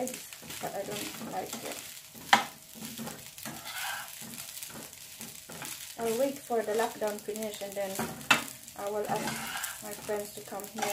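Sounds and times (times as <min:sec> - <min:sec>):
rice sizzling: 0:00.0 - 0:10.9
spatula scraping frying pan: 0:00.0 - 0:10.9.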